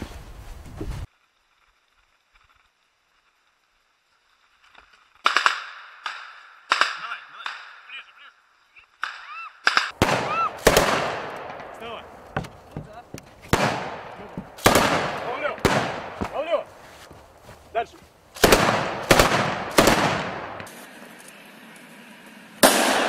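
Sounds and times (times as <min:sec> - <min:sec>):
rifles firing blanks: 0:05.2 - 0:08.1, 0:08.9 - 0:16.8, 0:18.4 - 0:21.7
loud bangs: 0:09.0 - 0:16.8, 0:18.4 - 0:20.7, 0:22.6 - 0:23.0.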